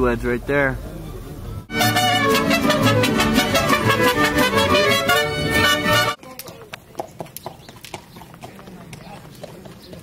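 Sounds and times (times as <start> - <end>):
horse hooves clopping on dirt: 6.2 - 10.0.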